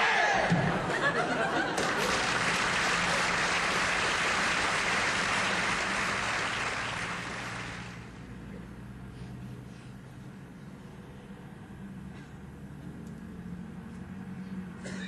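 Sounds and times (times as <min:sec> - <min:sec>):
audience applauding: 0:00.4 - 0:08.2.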